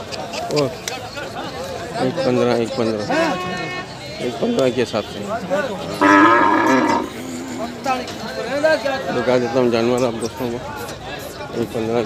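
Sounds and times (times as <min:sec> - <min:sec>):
quiet voices: 0:05.2 - 0:11.9
cow mooing: 0:06.0 - 0:07.9.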